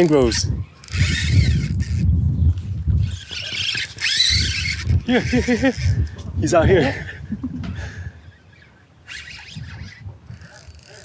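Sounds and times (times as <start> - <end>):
wind rumbling on microphone: 0.0 - 8.4, 9.1 - 11.0
fishing rod and reel handling noise: 0.0 - 11.0.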